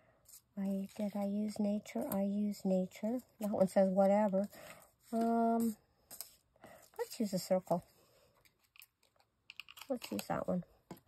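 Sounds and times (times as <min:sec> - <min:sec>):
paper rustling: 0:00.3 - 0:02.2.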